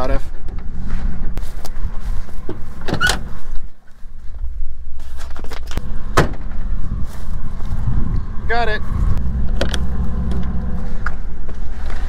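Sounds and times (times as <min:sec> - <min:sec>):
vehicle engine idling: 0:05.8 - 0:12.0.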